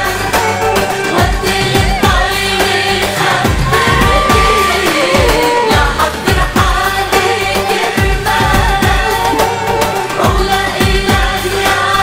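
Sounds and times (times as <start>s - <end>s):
amplified backing music: 0.0s - 12.0s
woman singing into microphone: 0.0s - 12.0s
deep drum beat: 1.2s - 7.2s, 8.0s - 9.4s.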